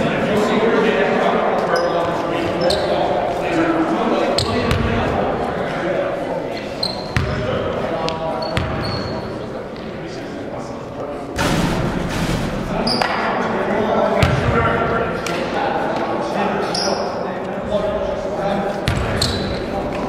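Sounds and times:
chatter of many voices: 0:00.0 - 0:20.0
sneaker squeaks: 0:01.7 - 0:03.0, 0:04.4 - 0:04.8, 0:06.5 - 0:07.4, 0:08.4 - 0:09.4, 0:12.8 - 0:13.2, 0:16.6 - 0:17.2, 0:18.8 - 0:19.8.

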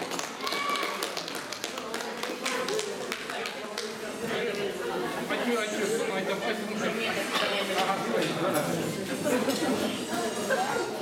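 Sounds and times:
hand claps: 0:00.0 - 0:04.0
voices in a hall: 0:00.0 - 0:11.0.

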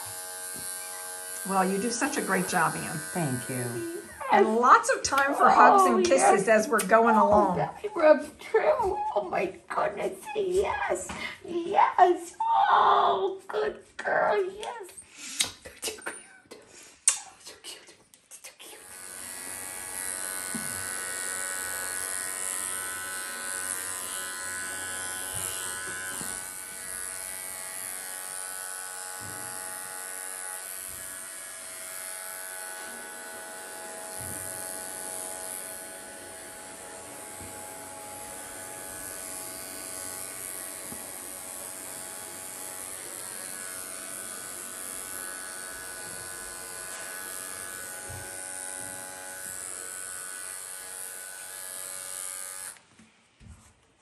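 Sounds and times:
electric clipper buzzing: 0:00.0 - 0:08.8, 0:18.8 - 0:52.9.

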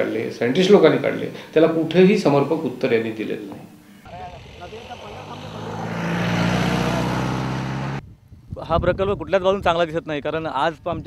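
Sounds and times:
small motorcycle engine approaching: 0:04.0 - 0:08.0.

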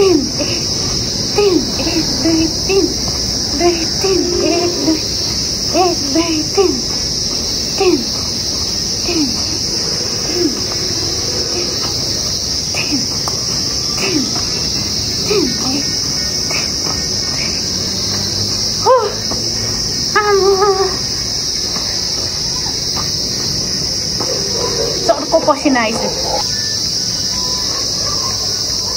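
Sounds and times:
higher calls: 0:00.0 - 0:28.7
short low falling calls: 0:00.0 - 0:28.8
high-pitched insect chorus: 0:00.0 - 0:28.9.

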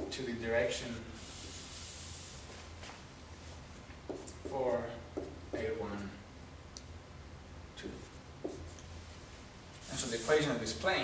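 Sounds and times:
marker writing on whiteboard: 0:04.0 - 0:06.1, 0:08.0 - 0:08.9
marker tap: 0:04.1 - 0:05.7, 0:08.4 - 0:08.8.

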